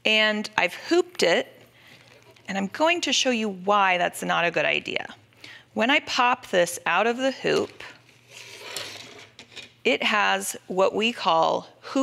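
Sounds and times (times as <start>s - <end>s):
plastic scraping on fabric: 7.8s - 9.7s.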